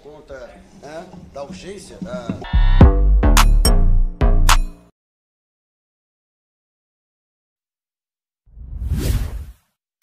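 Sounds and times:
whoosh: 0:08.5 - 0:09.7.

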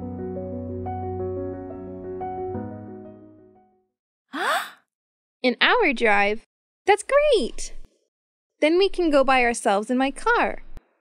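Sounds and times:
woman's breathy exclamation: 0:04.4 - 0:04.8.

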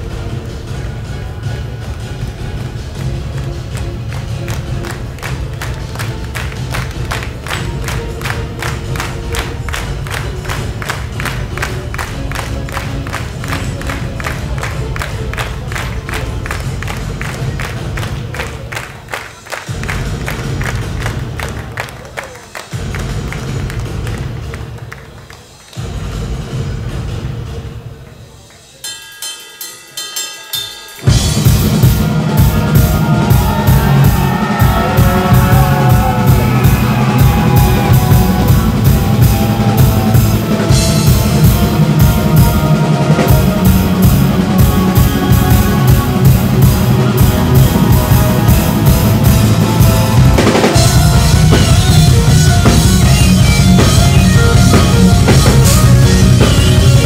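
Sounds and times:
metal band playing loud: 0:00.0 - 0:21.9, 0:30.6 - 0:57.0
pulsing metal beat: 0:29.0 - 0:57.0.

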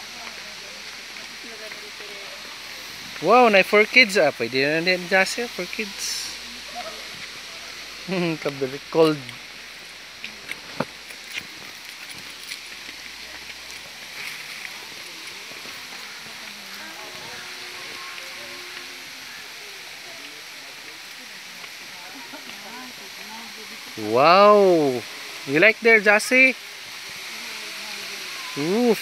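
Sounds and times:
running water rushing: 0:00.0 - 0:29.0
faint distant voices: 0:13.0 - 0:25.4.

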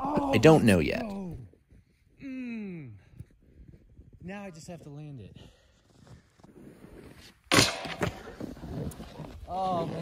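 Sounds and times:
board thud and scrape: 0:07.2 - 0:08.8
board sliding through snow: 0:08.0 - 0:10.0.

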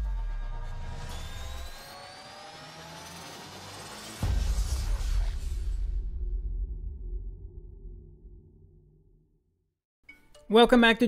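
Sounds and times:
low rumble: 0:04.2 - 0:09.4.

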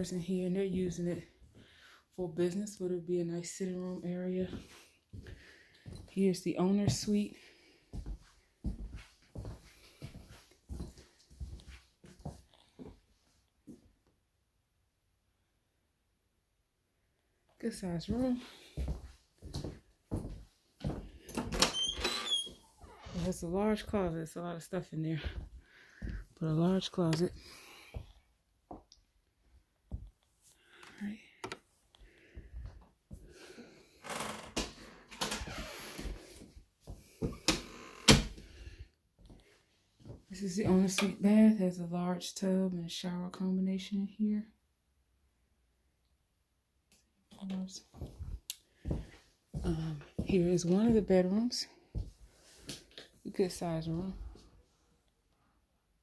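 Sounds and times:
footsteps on hardwood floor: 0:04.4 - 0:06.2, 0:06.8 - 0:07.2, 0:07.9 - 0:13.0, 0:18.1 - 0:21.6, 0:25.2 - 0:28.9, 0:29.9 - 0:30.2, 0:35.4 - 0:38.4, 0:47.9 - 0:51.2, 0:51.9 - 0:52.9.

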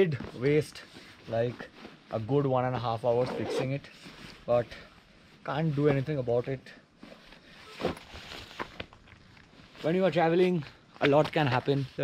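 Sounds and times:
fabric rustling: 0:00.1 - 0:10.7.

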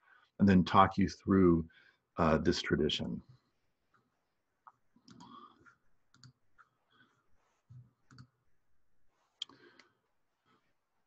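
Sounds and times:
computer mouse clicks: 0:06.1 - 0:06.7, 0:07.8 - 0:08.4.

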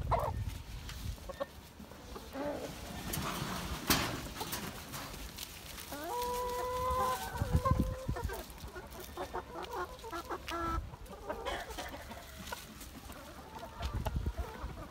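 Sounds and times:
chickens clucking: 0:00.0 - 0:14.9
chicken long call: 0:05.9 - 0:08.5.

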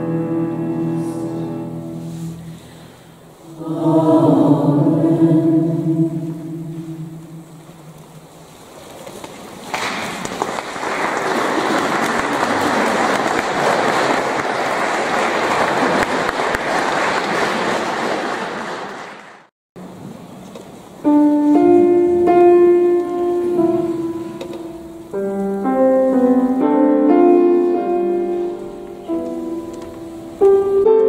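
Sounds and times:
choir holding a chord: 0:03.4 - 0:08.1
audience applause: 0:09.7 - 0:19.5.

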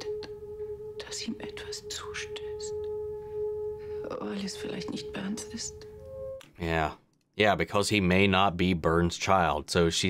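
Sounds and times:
sustained drone note: 0:00.0 - 0:06.4
whispered dialogue: 0:00.0 - 0:06.8.

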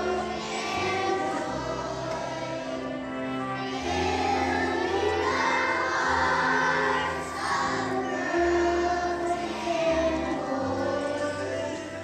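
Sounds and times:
children's choir singing: 0:00.0 - 0:12.0
instrumental accompaniment: 0:00.0 - 0:12.0.

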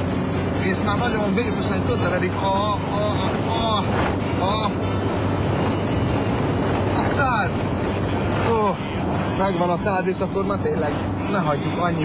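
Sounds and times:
car engine at full throttle: 0:00.0 - 0:12.0
road noise: 0:00.0 - 0:12.0
wind noise: 0:00.0 - 0:12.0.

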